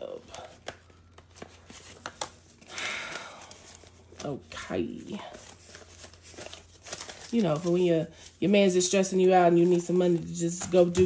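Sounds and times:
banknotes rustling: 0:00.1 - 0:11.0.

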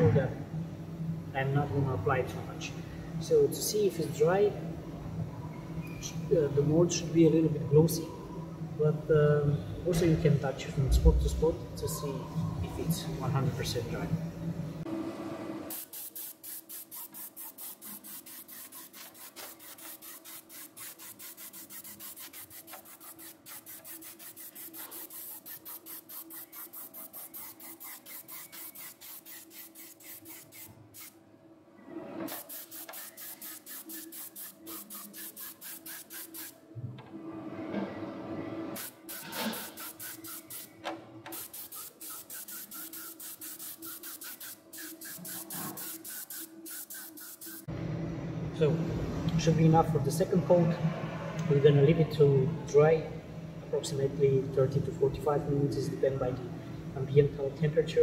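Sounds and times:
spray gun air hiss: 0:15.7 - 0:31.2, 0:32.3 - 0:36.6, 0:38.8 - 0:47.7.

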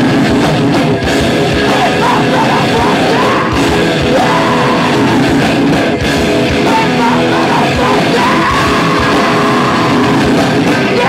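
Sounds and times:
distorted electric guitar: 0:00.0 - 0:11.0
pounding drums: 0:00.0 - 0:11.0
singer shouting into microphone: 0:01.6 - 0:05.4, 0:06.6 - 0:11.0.

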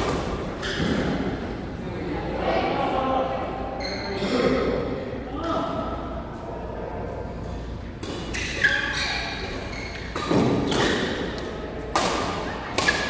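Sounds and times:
rackets hitting shuttlecock: 0:08.0 - 0:13.0.

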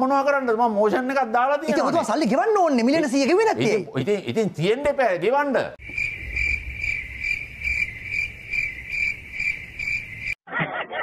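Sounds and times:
cricket chirping: 0:05.8 - 0:10.4.

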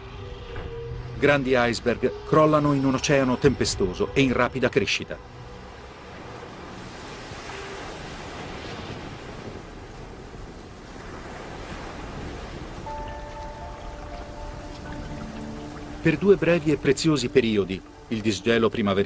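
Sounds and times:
soft music: 0:00.0 - 0:10.8, 0:12.6 - 0:19.0
storm waves breaking: 0:00.0 - 0:19.0.

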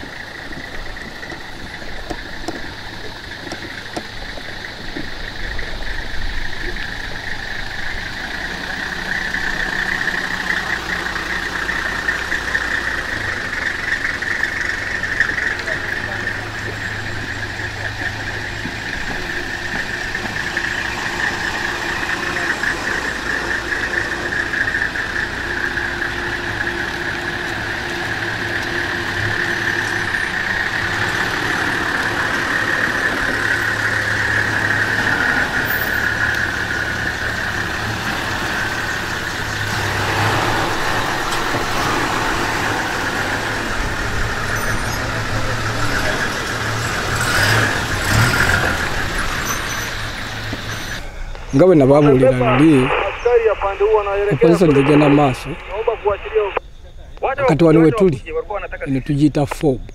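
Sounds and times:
vehicle engines passing: 0:00.0 - 0:59.9
high-pitched drone: 0:48.4 - 0:56.6.

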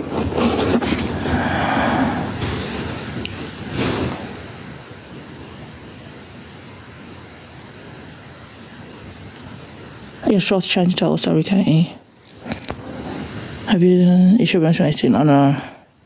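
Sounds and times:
rustling: 0:00.0 - 0:04.7
steady background hiss: 0:00.0 - 0:16.0.

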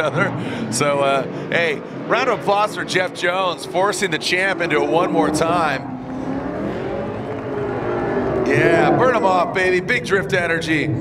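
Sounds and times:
car engine revving: 0:00.0 - 0:11.0.

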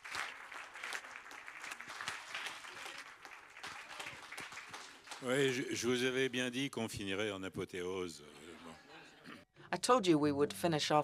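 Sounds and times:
audience applauding: 0:00.0 - 0:06.2.

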